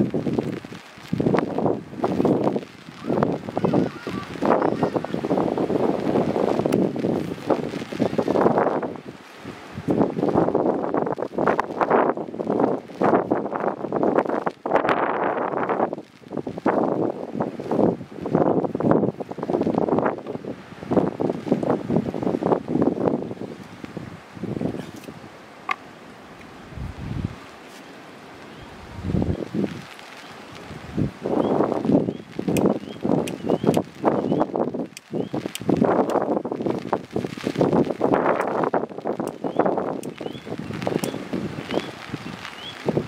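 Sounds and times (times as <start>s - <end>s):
branches and grass rustling: 0.0s - 43.0s
wind noise: 0.0s - 43.0s.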